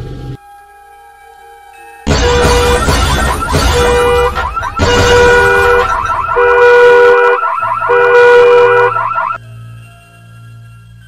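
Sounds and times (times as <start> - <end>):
loud two-tone horn blare: 2.1 - 9.4
music and sound effects: 2.1 - 9.8.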